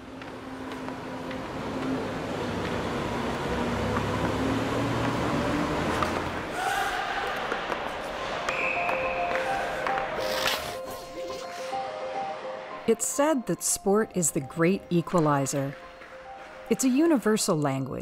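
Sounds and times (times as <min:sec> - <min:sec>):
ice resurfacer running: 0:00.0 - 0:06.5.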